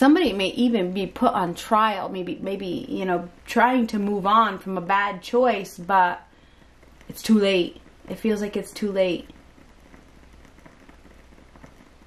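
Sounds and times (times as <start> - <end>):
steady hiss: 0.0 - 12.0
faint ticks: 9.2 - 12.0.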